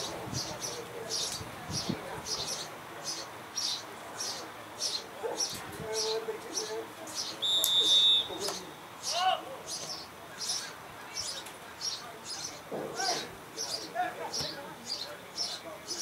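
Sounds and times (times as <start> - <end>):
high chirping: 0.0 - 12.6
referee's whistle blast: 7.4 - 8.5
faint shouts of players: 7.4 - 9.7, 12.8 - 14.7.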